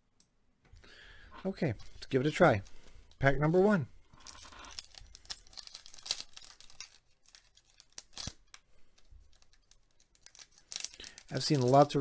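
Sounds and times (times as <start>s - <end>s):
wrapper tearing and crinkling: 4.2s - 8.6s, 9.2s - 12.0s.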